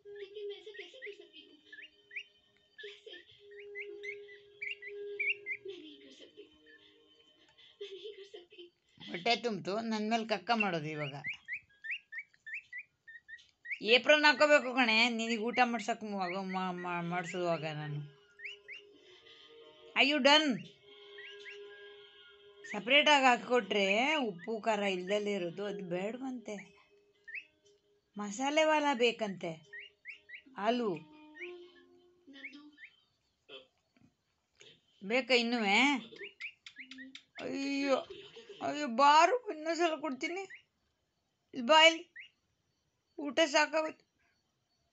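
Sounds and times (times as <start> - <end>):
woman's voice: 0.0 - 1.8, 5.5 - 6.7, 7.9 - 11.3, 13.8 - 18.1, 20.0 - 20.6, 22.7 - 26.7, 28.2 - 29.6, 30.6 - 31.0, 35.0 - 36.1, 37.4 - 40.5, 41.6 - 42.0, 43.2 - 43.9
chick peeping: 0.1 - 8.2, 10.2 - 14.8, 15.4 - 19.5, 20.6 - 25.3, 27.3 - 27.5, 28.6 - 33.0, 35.6 - 38.8, 41.9 - 42.3.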